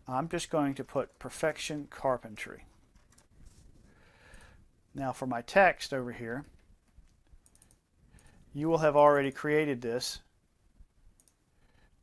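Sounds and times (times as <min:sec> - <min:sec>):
computer mouse clicks: 0:06.5 - 0:08.3, 0:11.2 - 0:11.4.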